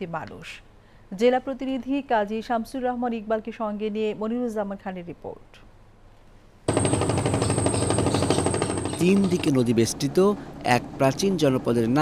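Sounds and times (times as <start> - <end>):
boat engine knocking: 6.7 - 10.1.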